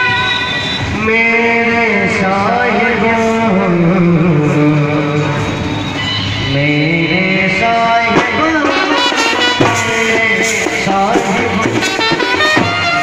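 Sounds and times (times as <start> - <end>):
man singing into microphone: 0.9 - 5.7, 6.4 - 13.0
sharp drum hits: 8.1 - 13.0
brass band music: 8.4 - 13.0.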